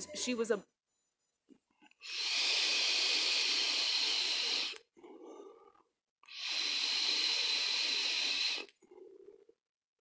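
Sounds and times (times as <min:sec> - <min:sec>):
airy hiss of vape drag: 0:02.0 - 0:04.9, 0:06.3 - 0:08.8.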